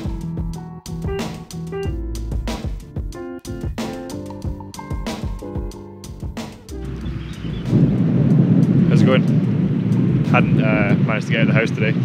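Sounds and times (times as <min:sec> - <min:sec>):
wind buffeting microphone: 0:05.2 - 0:12.0.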